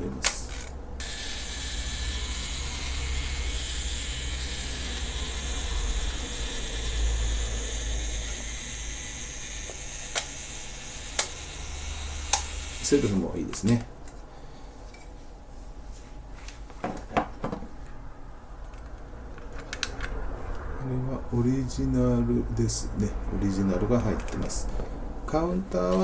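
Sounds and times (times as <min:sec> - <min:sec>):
camera self-timer whirring: 0:00.4 - 0:13.3.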